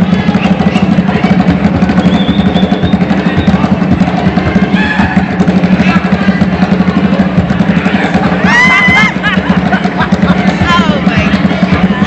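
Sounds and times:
loud music: 0.0s - 12.0s
rapid drumming: 0.0s - 12.0s.

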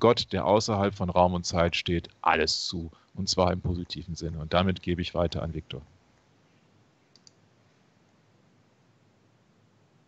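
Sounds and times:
computer mouse clicks: 7.1s - 7.4s.

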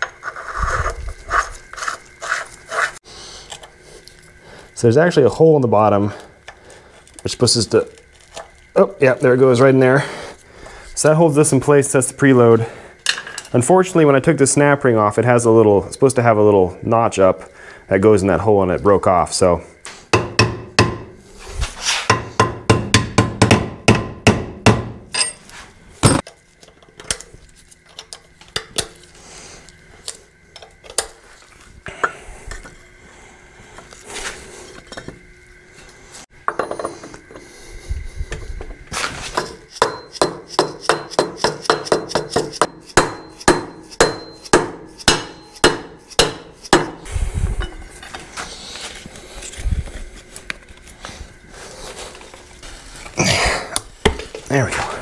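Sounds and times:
hammer striking metal: 20.1s - 21.1s, 22.1s - 25.4s, 39.8s - 47.0s.

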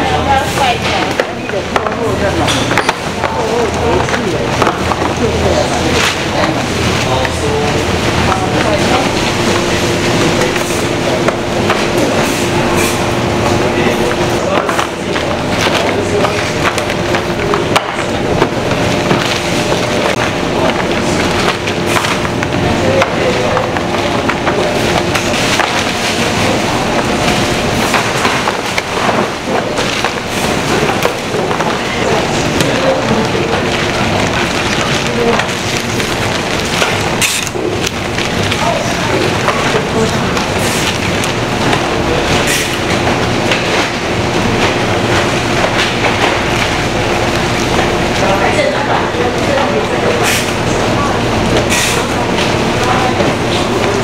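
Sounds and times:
conveyor machinery running: 0.0s - 54.0s.

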